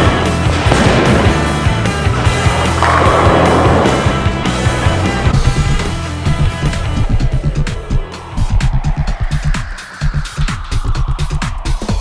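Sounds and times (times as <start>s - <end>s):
rock music: 0.0s - 11.3s
bowling ball rolling: 2.1s - 5.3s.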